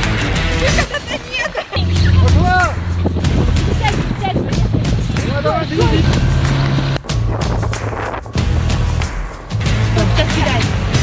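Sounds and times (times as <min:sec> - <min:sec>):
water rushing: 0:00.0 - 0:11.0
outboard motor running: 0:01.8 - 0:07.6
wind noise on microphone: 0:02.0 - 0:09.0.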